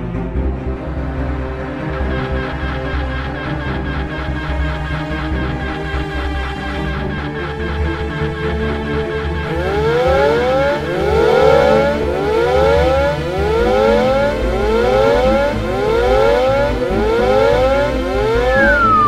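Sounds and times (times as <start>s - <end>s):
descending whistle: 9.5s - 19.0s.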